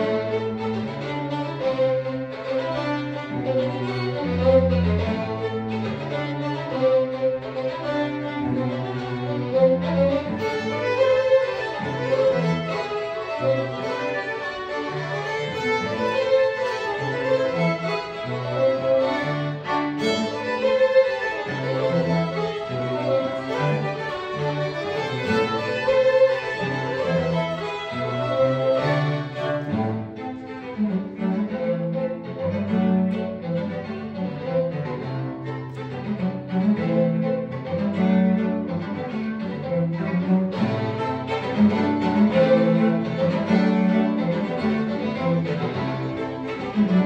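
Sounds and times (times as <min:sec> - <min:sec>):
cello low notes: 0:00.0 - 0:47.0
violins and viola: 0:00.0 - 0:47.0.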